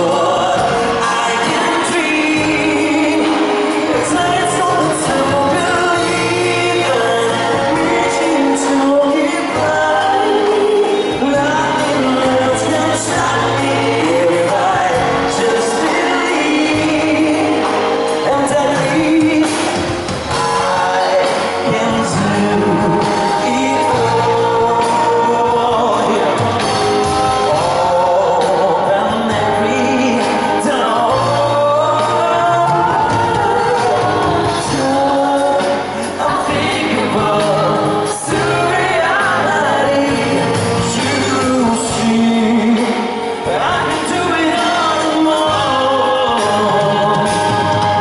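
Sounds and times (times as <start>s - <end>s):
amplified pop accompaniment: 0.0s - 48.0s
bass line: 0.0s - 48.0s
man singing into a microphone: 0.0s - 48.0s.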